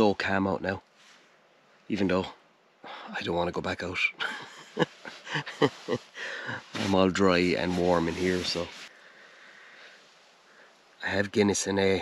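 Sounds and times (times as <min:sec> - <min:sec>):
man chuckling: 0:04.2 - 0:06.7.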